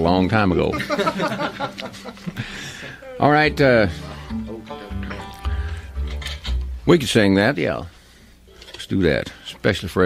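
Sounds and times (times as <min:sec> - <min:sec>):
ringing string notes: 0:03.2 - 0:06.8.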